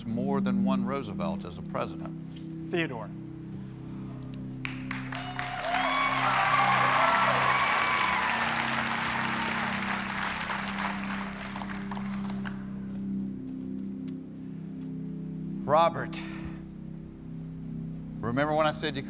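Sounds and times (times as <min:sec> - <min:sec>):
audience applauding and cheering: 0:04.6 - 0:12.7
low held music chords: 0:06.8 - 0:19.0.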